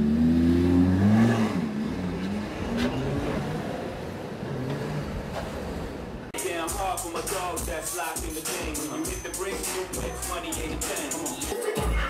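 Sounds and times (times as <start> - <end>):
car engine revving: 0.0 - 6.3.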